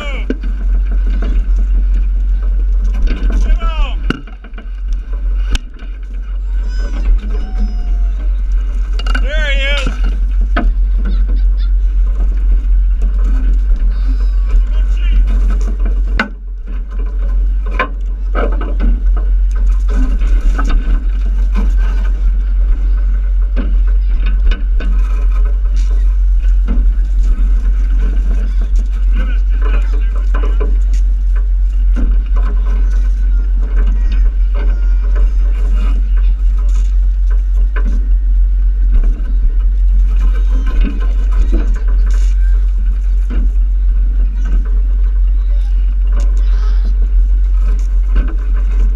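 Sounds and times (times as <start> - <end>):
steady low rumble: 0.0 - 48.9
children's voices: 6.3 - 8.5, 10.6 - 12.3, 13.8 - 15.1, 32.4 - 36.9, 43.4 - 47.3.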